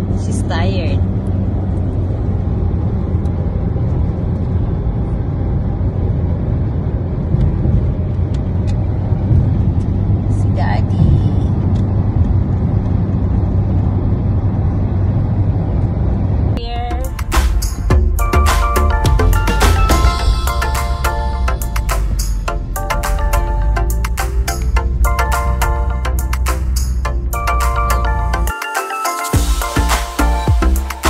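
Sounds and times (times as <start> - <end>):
car road and engine rumble: 0.0 - 31.0
music with a beat: 17.0 - 31.0.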